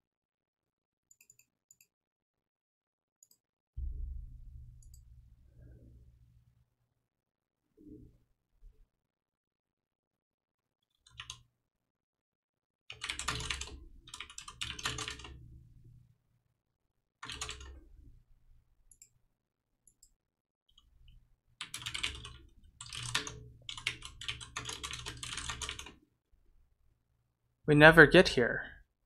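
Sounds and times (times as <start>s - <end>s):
computer keyboard typing: 11.0s - 11.4s, 12.9s - 15.4s, 17.2s - 17.8s, 21.6s - 26.0s.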